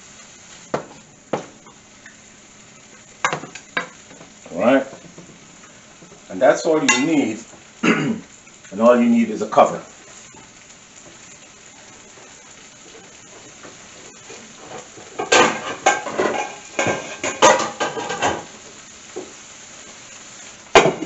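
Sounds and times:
vegetables sizzling in a frying pan: 0.0 - 21.0
cookware clattering: 15.2 - 18.5.

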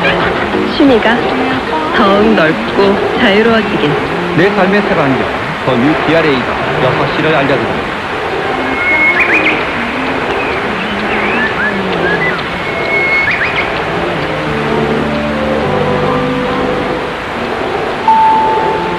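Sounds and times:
radio static and hiss: 0.0 - 18.9
radio time-signal music: 0.0 - 18.9.

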